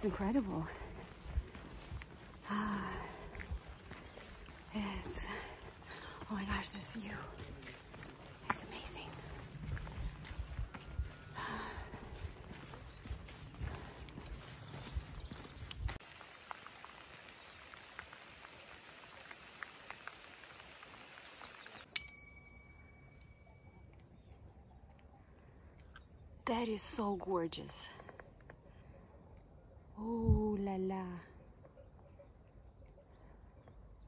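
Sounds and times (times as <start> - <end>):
wind rumble on microphone: 8.6 - 16.0, 30.1 - 30.6
outdoor hiss: 16.0 - 21.9
bell-like ding: 22.0 - 23.8.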